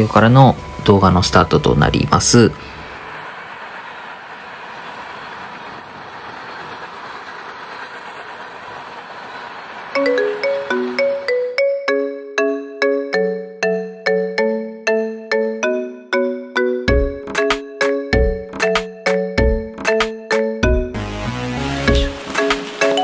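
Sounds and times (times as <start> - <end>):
freight train cars rolling: 0.0 - 12.1, 20.9 - 23.0
marimba-like mallet melody: 10.0 - 21.0.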